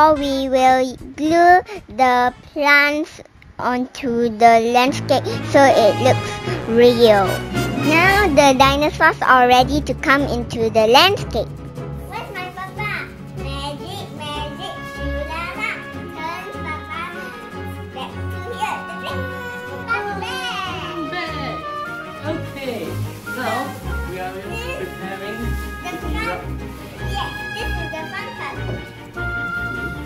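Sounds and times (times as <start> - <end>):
young child's voice: 0.0 - 11.5, 12.1 - 21.0, 25.8 - 26.4, 27.0 - 28.8
background music with low bass: 4.7 - 30.0.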